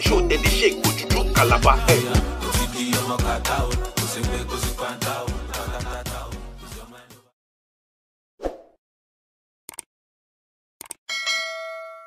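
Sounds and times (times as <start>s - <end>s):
quick clicks: 9.7s - 9.9s, 10.8s - 11.0s
bright bell chime: 11.1s - 12.0s.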